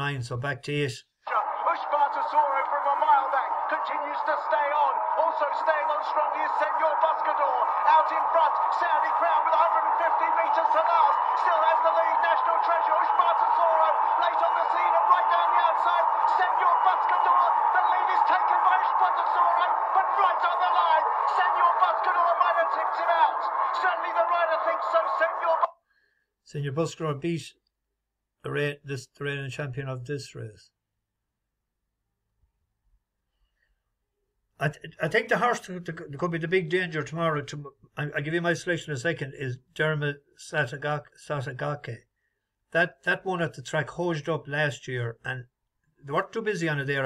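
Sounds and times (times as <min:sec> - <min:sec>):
horse race commentary from small speaker: 0:00.0 - 0:25.8, 0:34.6 - 0:42.0, 0:42.8 - 0:47.0.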